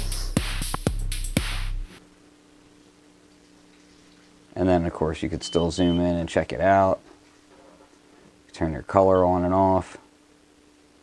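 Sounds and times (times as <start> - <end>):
electronic kick drum: 0.0 - 1.9
cymbal hiss and bass: 0.0 - 2.1
faint electrical hum: 0.0 - 11.0.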